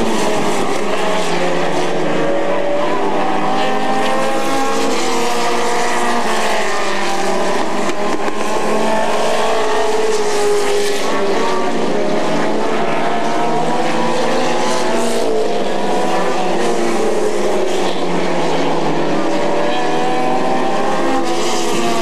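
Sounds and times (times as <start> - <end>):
racing car engines: 0.0 - 22.0.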